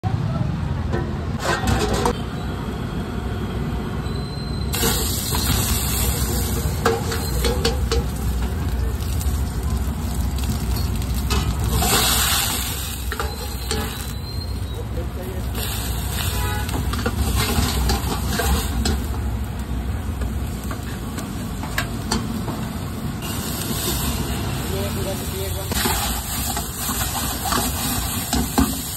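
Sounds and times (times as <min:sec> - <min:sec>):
metal ladle scraping wok: 0:01.3 - 0:02.2, 0:04.8 - 0:19.2, 0:23.2 - 0:28.9
gas burner rushing: 0:04.7 - 0:28.9.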